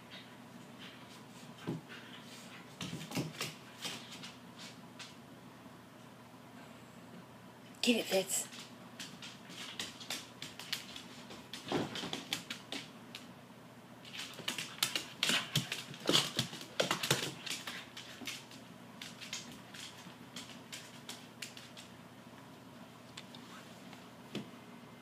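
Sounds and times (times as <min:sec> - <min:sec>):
dog claws clicking on wooden floor: 0:08.5 - 0:13.3, 0:14.1 - 0:22.0.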